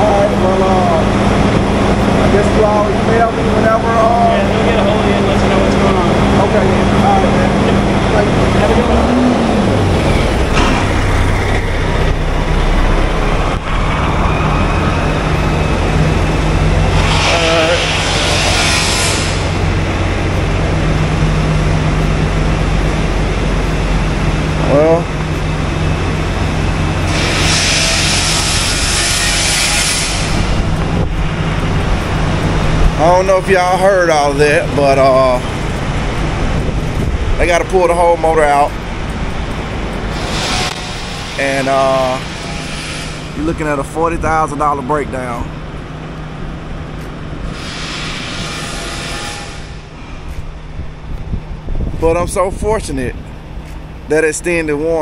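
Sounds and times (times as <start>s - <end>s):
low machine hum: 0.0s - 55.0s
hissing bursts: 16.9s - 19.7s, 27.0s - 30.6s, 40.1s - 43.4s, 47.5s - 49.9s.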